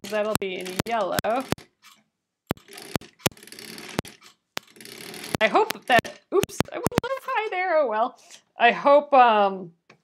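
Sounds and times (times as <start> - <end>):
sewing machine stitching: 0.0 - 7.2
sharp clicks: 0.0 - 7.3.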